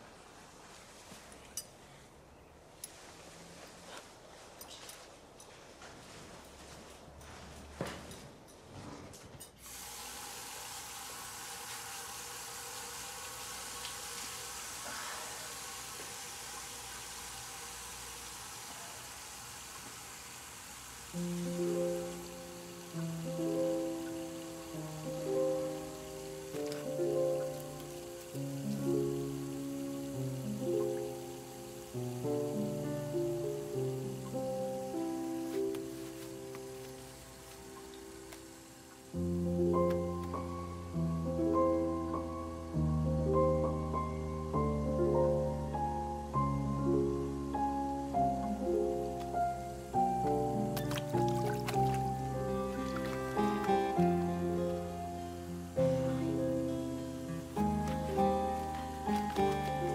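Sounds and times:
running water: 0:09.6 - 0:42.3, 0:48.0 - 0:59.9
slow keyboard music: 0:21.0 - 0:59.9.

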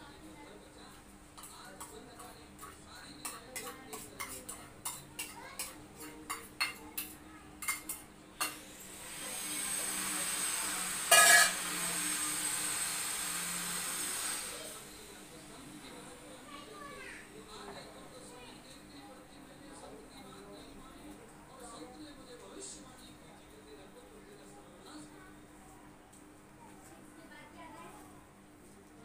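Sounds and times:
steel utensils clinking: 0:11.0 - 0:11.7.

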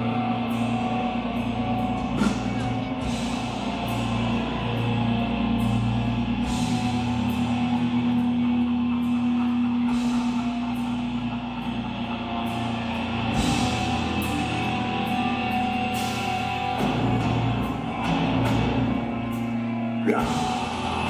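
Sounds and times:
distorted electric guitars: 0:00.0 - 0:21.0
drum kit with cymbal crashes: 0:00.0 - 0:21.0.

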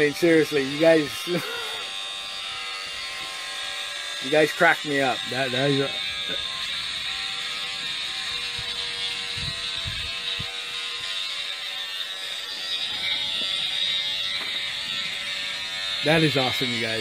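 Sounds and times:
electric hair clippers buzzing: 0:00.0 - 0:17.0.

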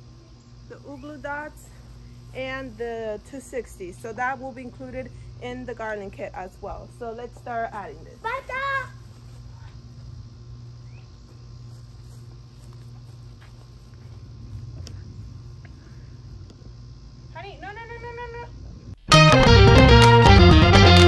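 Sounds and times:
steady low hum: 0:00.0 - 0:20.0
child's high-pitched call: 0:08.2 - 0:09.0.

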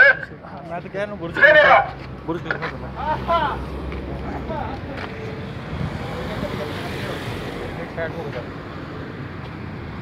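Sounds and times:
faint voices talking: 0:00.0 - 0:08.8
outdoor noise: 0:00.0 - 0:10.0.

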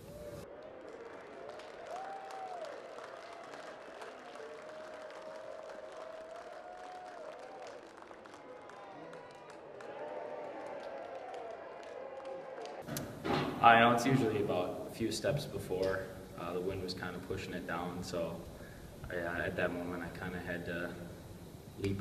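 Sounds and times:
people clapping: 0:00.0 - 0:12.9
crowd shouting and cheering: 0:00.0 - 0:14.6.

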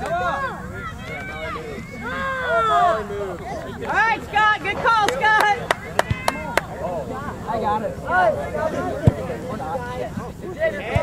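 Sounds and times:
distant voices calling out: 0:00.0 - 0:11.0
sharp hand claps: 0:05.0 - 0:06.7.

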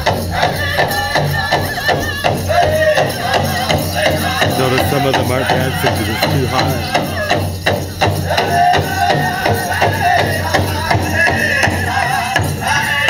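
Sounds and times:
big drum beating: 0:00.0 - 0:12.7
men singing together: 0:00.0 - 0:13.0.

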